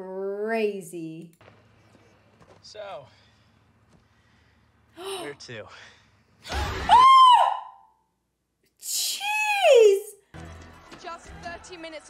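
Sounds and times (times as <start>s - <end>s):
woman screaming: 6.5s - 7.9s, 8.9s - 10.1s.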